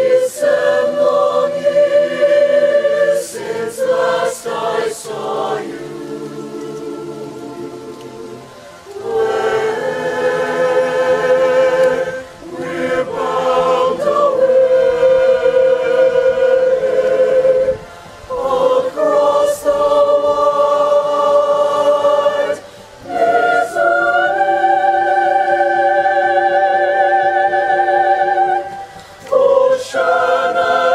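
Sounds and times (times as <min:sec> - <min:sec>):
choir singing sustained chords: 0:00.0 - 0:30.9
singers breathing: 0:22.6 - 0:23.1, 0:28.7 - 0:29.3.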